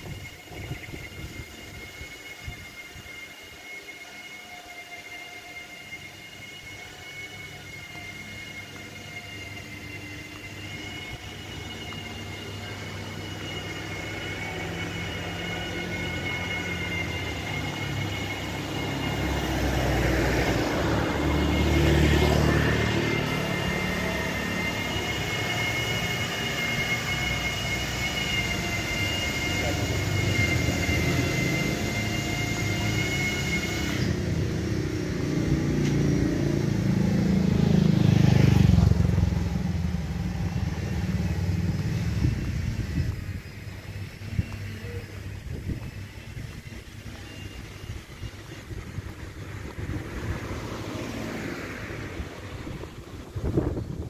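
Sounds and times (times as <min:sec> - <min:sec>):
steady high whine: 0:00.0 - 0:54.0
vehicles passing: 0:06.5 - 0:54.0.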